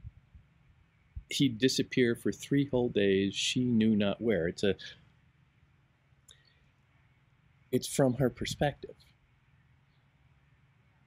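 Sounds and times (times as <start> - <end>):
faint background hum: 0.0 - 11.0.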